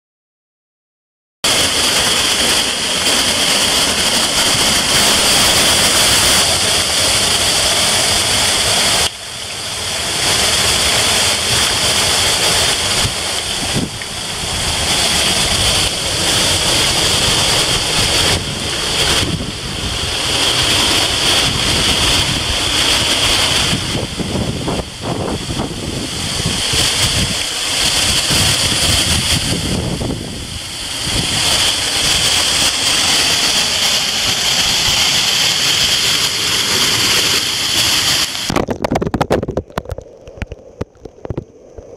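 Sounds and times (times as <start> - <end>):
rushing waterfalls and stream: 1.5 - 41.9.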